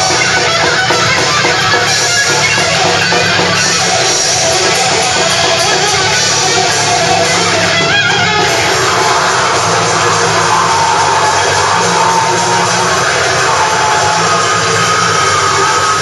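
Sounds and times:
death metal band playing live: 0.0 - 16.0.

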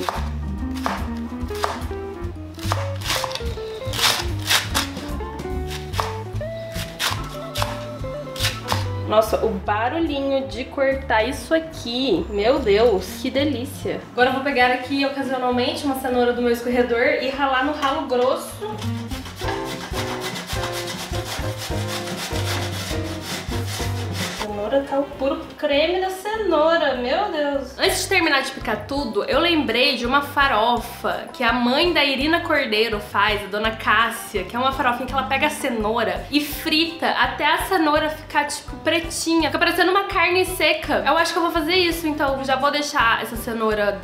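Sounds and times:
background music: 0.0 - 44.0
carrot grated on metal grater: 18.8 - 24.5.

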